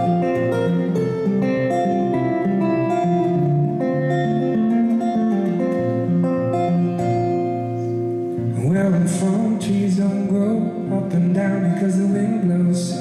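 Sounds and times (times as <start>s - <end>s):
acoustic guitar playing: 0.0s - 13.0s.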